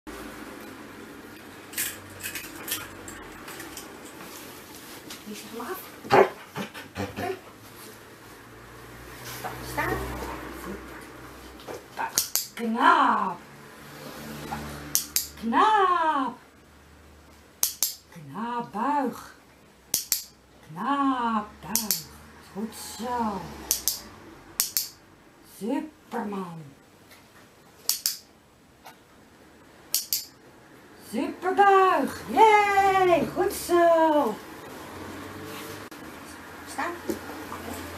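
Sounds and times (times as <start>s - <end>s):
dog barking: 6.1s - 6.4s.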